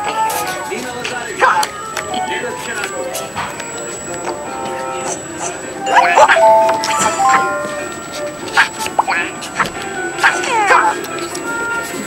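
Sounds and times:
short chiming notes: 5.8s - 8.0s
game music: 5.8s - 8.3s.

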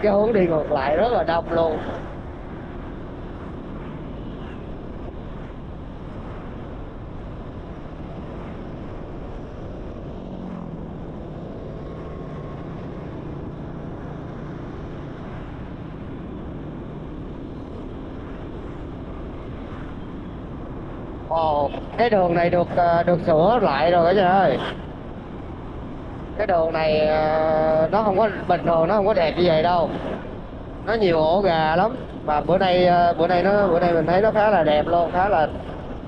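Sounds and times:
low hum: 0.0s - 36.0s
wind rush and road noise: 0.0s - 36.0s.

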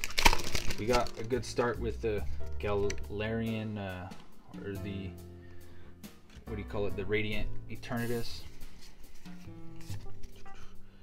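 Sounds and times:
trading cards rustling: 0.0s - 3.1s, 8.0s - 10.8s
background music with guitar-like notes: 0.1s - 11.0s.

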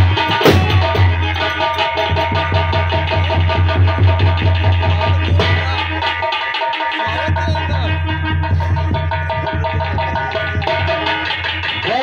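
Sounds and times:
drum beaten in fast rhythm: 0.0s - 12.0s.

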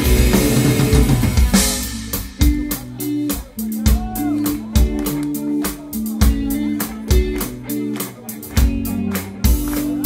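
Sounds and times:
rock band playing: 0.0s - 10.0s.

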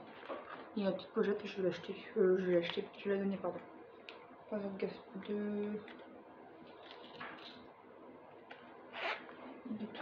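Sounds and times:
zipper being pulled: 8.9s - 9.3s.

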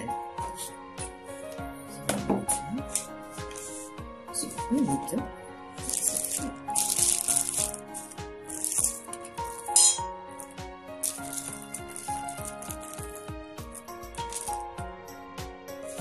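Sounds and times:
background music: 0.0s - 16.0s
plastic bag tearing: 5.8s - 9.1s
metal screws clinking: 5.8s - 14.7s.

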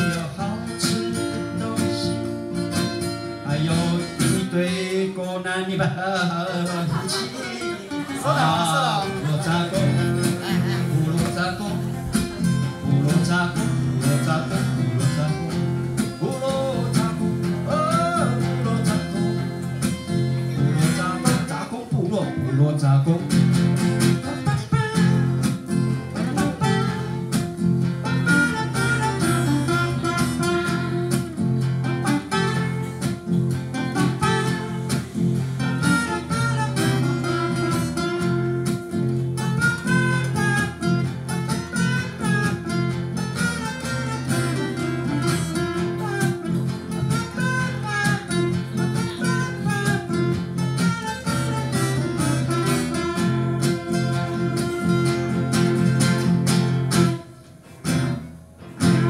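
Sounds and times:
man singing: 0.0s - 27.4s, 28.0s - 33.0s, 33.7s - 38.6s, 43.4s - 56.0s
acoustic guitars playing: 0.0s - 59.0s.

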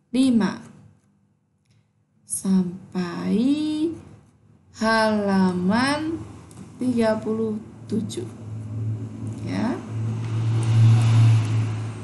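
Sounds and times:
steady low hum: 0.0s - 12.0s
rushing noise: 7.6s - 12.0s.

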